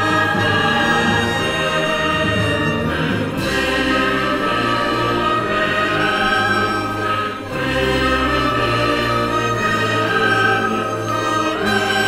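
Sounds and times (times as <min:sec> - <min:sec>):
choir singing sustained chords: 0:00.0 - 0:12.0
orchestra playing: 0:00.0 - 0:12.0.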